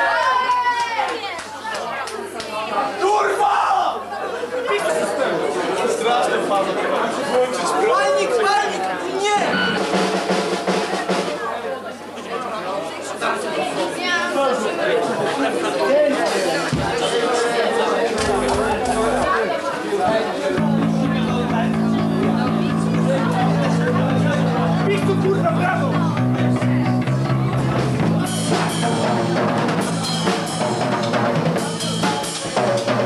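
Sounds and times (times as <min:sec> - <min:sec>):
crowd shouting: 0:00.0 - 0:01.3, 0:02.7 - 0:04.5, 0:16.5 - 0:33.0
band holding low note: 0:18.2 - 0:19.4, 0:20.6 - 0:31.8.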